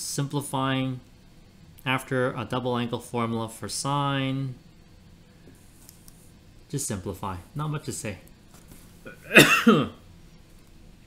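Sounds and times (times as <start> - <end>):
man coughing: 9.1 - 10.0.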